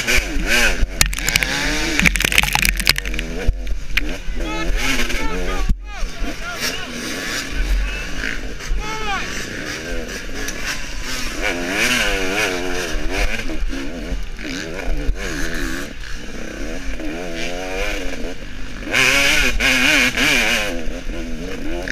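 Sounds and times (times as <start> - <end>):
dirt bike engine revving: 0.0 - 21.9.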